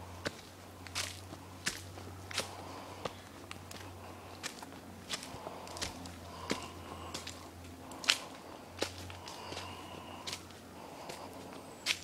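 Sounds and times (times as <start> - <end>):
footsteps on leafy dirt trail: 0.0 - 12.0.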